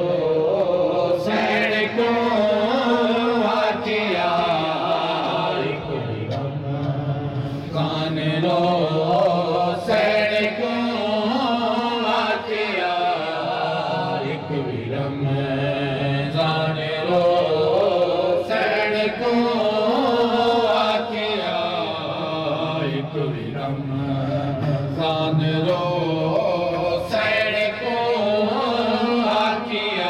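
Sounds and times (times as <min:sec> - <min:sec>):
men chanting a lament: 0:00.0 - 0:30.0.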